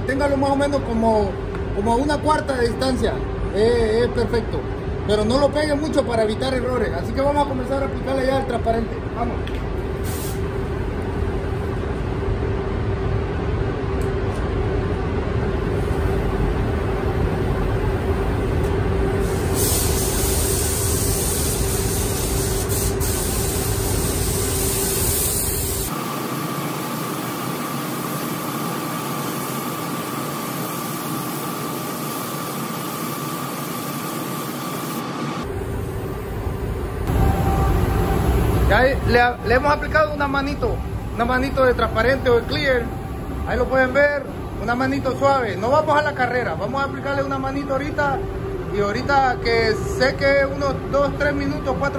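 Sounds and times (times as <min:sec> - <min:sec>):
spray booth air rushing: 0:09.8 - 0:11.8, 0:15.6 - 0:46.4
spray gun hissing: 0:10.0 - 0:10.6, 0:19.2 - 0:37.4
faint high whine: 0:25.9 - 0:51.9
low hum: 0:35.4 - 0:51.9.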